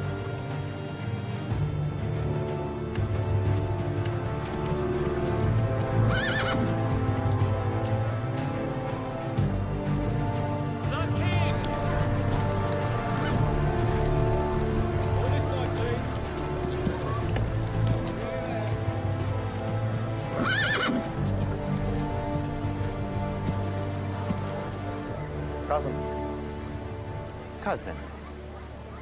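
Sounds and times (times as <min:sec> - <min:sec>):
horse hooves clip-clopping: 0:00.0 - 0:29.0
orchestral film score music: 0:00.0 - 0:29.0
horse whinnying: 0:05.2 - 0:07.1, 0:20.1 - 0:22.8.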